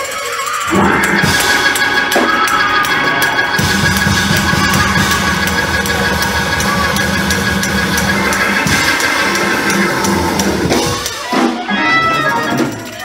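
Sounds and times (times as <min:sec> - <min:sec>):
bass: 0:00.0 - 0:13.0
sustained keyboard chords: 0:00.7 - 0:11.2
drum kit quick steady beat: 0:00.7 - 0:11.6.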